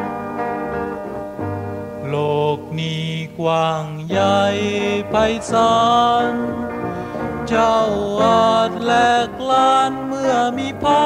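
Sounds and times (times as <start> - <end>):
instrumental backing: 0.0 - 11.0
person singing song: 2.0 - 11.0.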